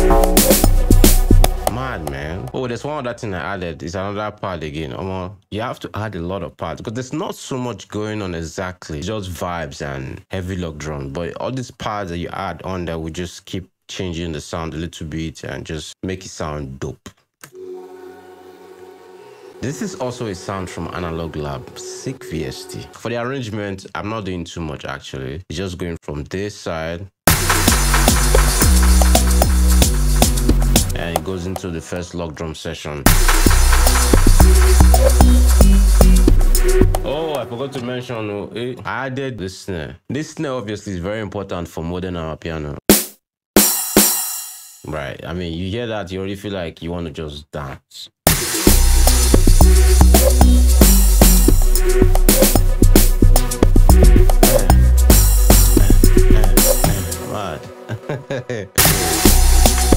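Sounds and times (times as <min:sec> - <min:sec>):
synth pad chord: 0:00.0 - 0:01.7, 0:17.5 - 0:22.9, 0:57.0 - 0:59.9
snare drum hits: 0:00.0 - 0:01.8, 0:27.3 - 0:31.0, 0:33.1 - 0:35.7, 0:42.9 - 0:44.2, 0:58.8 - 0:59.9.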